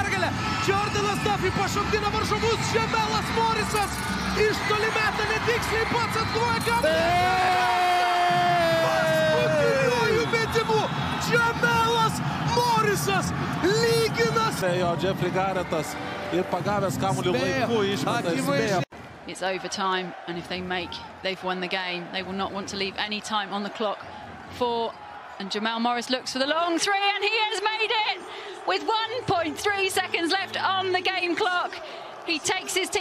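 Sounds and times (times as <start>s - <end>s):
commentator shouting: 0.0s - 14.6s
arena crowd cheering: 0.0s - 33.0s.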